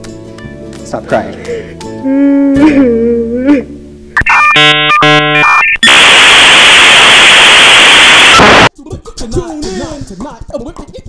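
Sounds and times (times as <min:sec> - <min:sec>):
dial-up modem beeps and tones: 0:04.2 - 0:08.7
modem loud steady hiss: 0:04.2 - 0:08.7.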